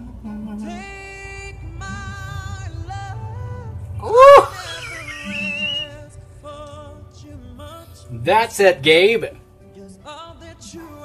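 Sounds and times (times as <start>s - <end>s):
man singing a ballad: 0.0s - 8.8s, 9.5s - 11.0s
man shouting woo: 4.0s - 6.0s.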